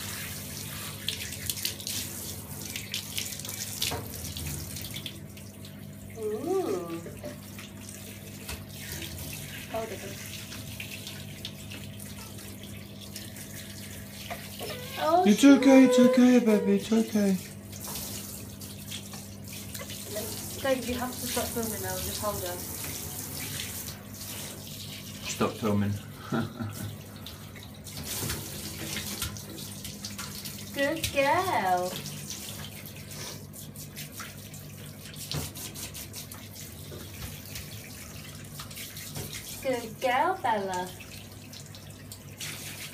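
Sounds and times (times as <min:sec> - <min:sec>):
shower water spraying: 0:00.0 - 0:05.5, 0:06.2 - 0:42.9
small splashes and taps: 0:01.0 - 0:05.8, 0:06.9 - 0:14.9, 0:17.4 - 0:25.5, 0:26.6 - 0:42.9
shower head spraying water: 0:19.1 - 0:24.6.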